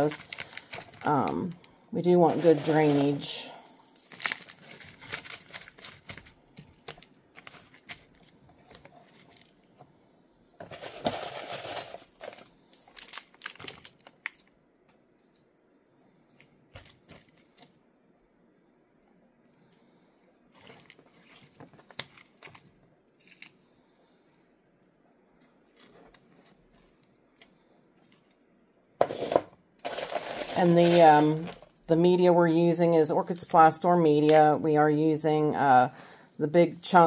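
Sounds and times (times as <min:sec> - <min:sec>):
plastic pot and moss rustling: 0:00.0 - 0:03.4, 0:29.0 - 0:31.8.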